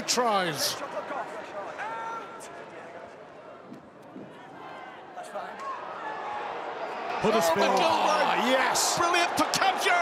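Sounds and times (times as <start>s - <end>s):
crowd shouts: 0.0s - 2.9s, 4.2s - 10.0s.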